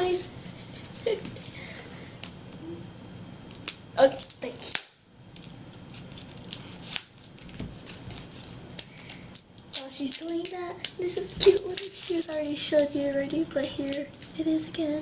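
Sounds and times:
scissors snipping packaging: 0:03.5 - 0:14.4.

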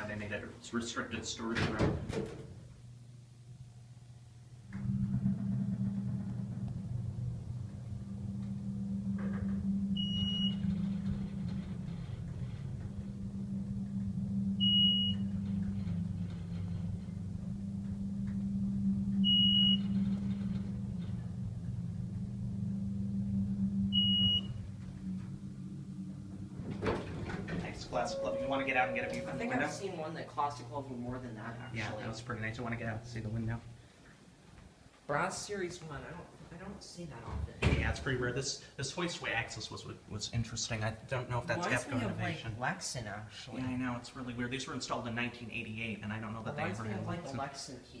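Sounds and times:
elevator pump humming: 0:00.0 - 0:34.4
short high beeps: 0:10.0 - 0:10.8, 0:14.6 - 0:15.4, 0:19.2 - 0:20.1, 0:23.9 - 0:24.6, 0:28.0 - 0:29.8.

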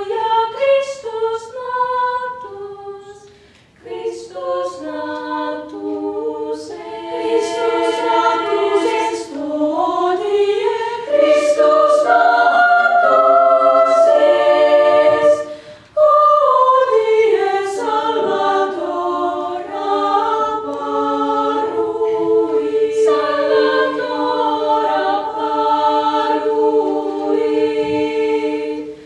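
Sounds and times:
girls' choir singing a cappella: 0:00.0 - 0:29.0.

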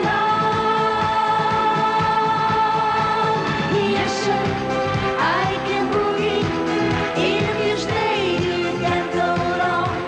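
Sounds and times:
disco-pop song: 0:00.0 - 0:10.0.

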